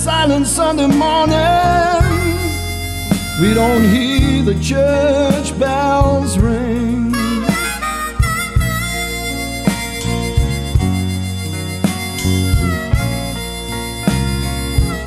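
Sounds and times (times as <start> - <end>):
band backing: 0.0 - 15.0
blues harmonica playing: 0.7 - 15.0.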